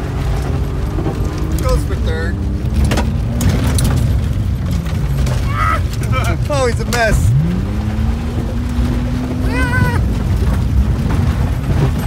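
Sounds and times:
car engine running hard: 0.0s - 12.0s
low rumble of car on dirt: 0.0s - 12.0s.

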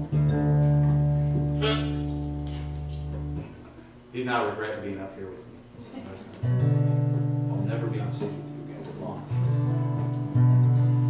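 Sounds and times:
acoustic guitar chord ringing: 0.0s - 3.5s, 6.4s - 11.0s.

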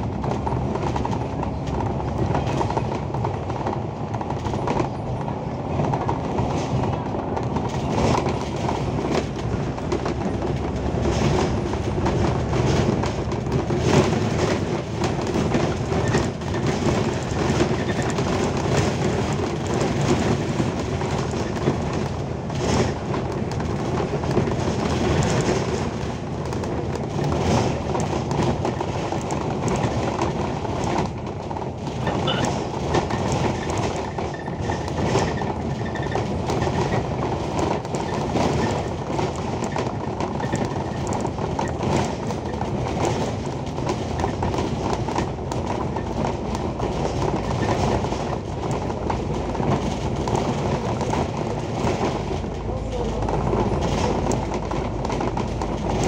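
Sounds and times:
bus engine and road noise: 0.0s - 56.0s
rattles and knocks of bus body: 0.0s - 56.0s.

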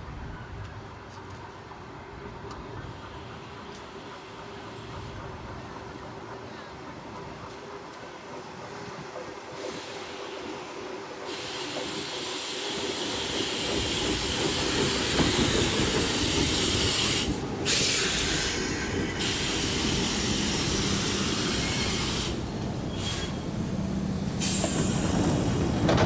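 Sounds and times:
electric train passing: 1.5s - 26.0s.

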